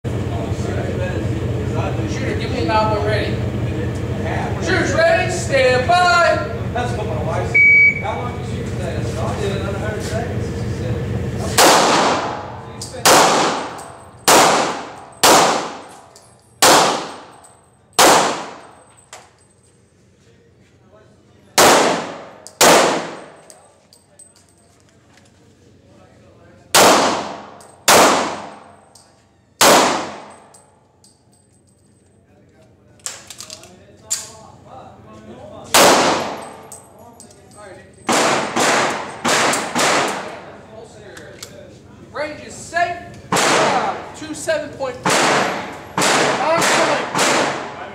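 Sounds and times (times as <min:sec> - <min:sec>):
handgun shots echoing indoors: 0:11.5 - 0:19.3, 0:21.6 - 0:23.6, 0:26.7 - 0:31.2, 0:35.7 - 0:36.9, 0:38.0 - 0:40.4, 0:43.3 - 0:44.0, 0:45.0 - 0:47.8.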